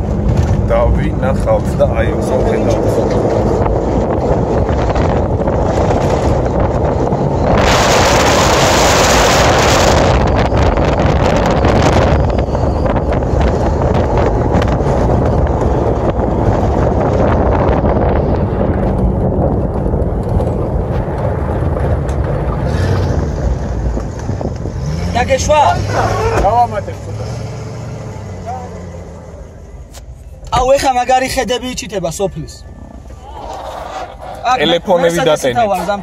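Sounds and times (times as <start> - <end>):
wind buffeting microphone: 0.0 - 26.8
engine and tyre rumble: 0.0 - 36.0.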